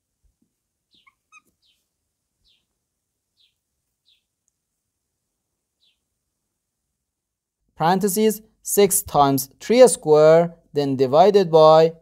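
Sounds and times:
faint downward bird chirps: 0:00.9 - 0:02.7.

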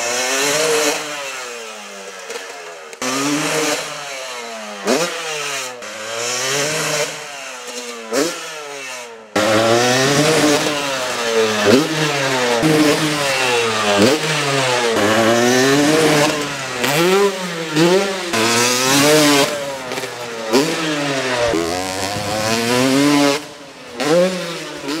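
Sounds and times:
dirt bike engine revving: 0:00.0 - 0:25.0.

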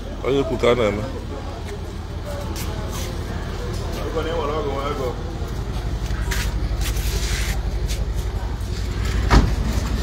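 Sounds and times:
loud mechanical clunk: 0:09.1 - 0:10.0.

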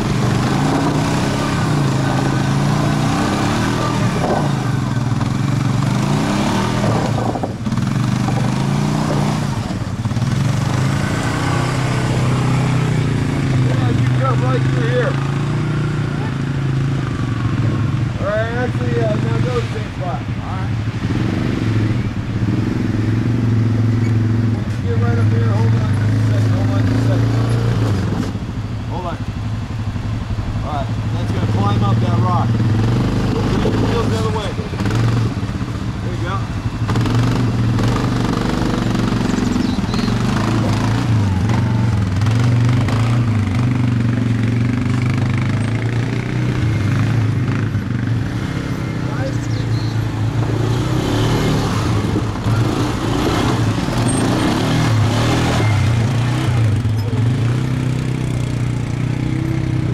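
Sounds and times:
atv engines running: 0:00.0 - 0:59.9.

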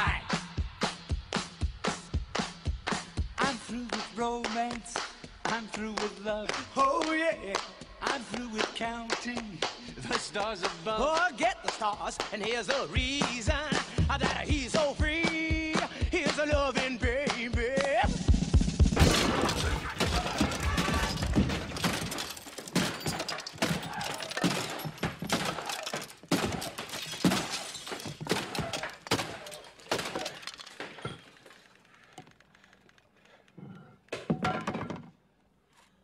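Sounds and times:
glass shattering: 0:19.0 - 0:31.7
bat smashing plastic and metal: 0:19.0 - 0:31.8.

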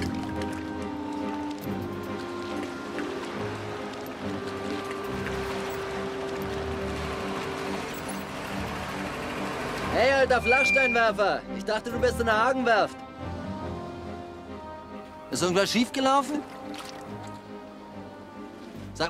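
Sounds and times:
slow film music: 0:00.0 - 0:19.0.

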